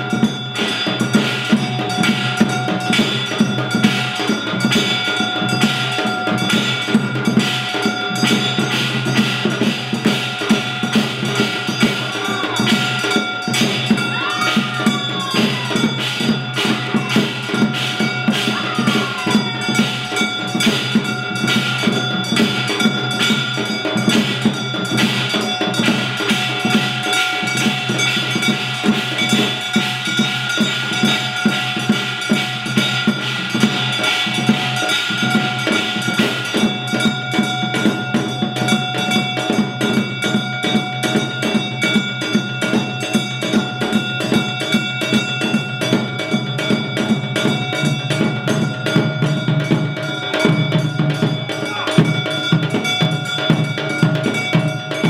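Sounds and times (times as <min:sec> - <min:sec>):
dense drum rhythm: 0:00.0 - 0:55.0
sustained ringing tones: 0:00.0 - 0:55.0.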